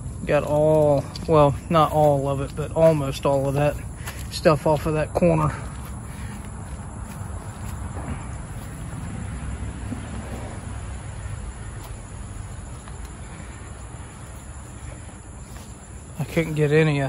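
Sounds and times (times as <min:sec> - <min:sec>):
insects chirring: 0:00.0 - 0:17.0.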